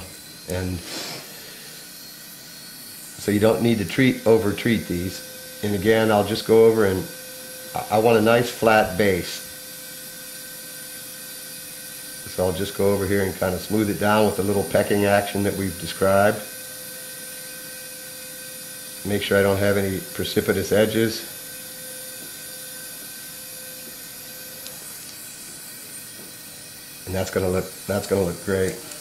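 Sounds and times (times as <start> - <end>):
suction hiss: 0.0 - 5.8
surgical equipment hissing: 0.0 - 6.2, 20.0 - 29.0.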